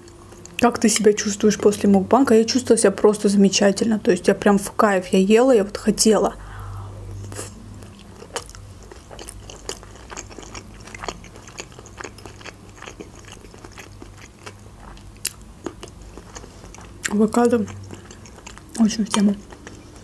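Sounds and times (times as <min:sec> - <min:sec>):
chewing salad: 0:00.0 - 0:03.3, 0:07.1 - 0:20.0
faint low hum: 0:00.0 - 0:20.0.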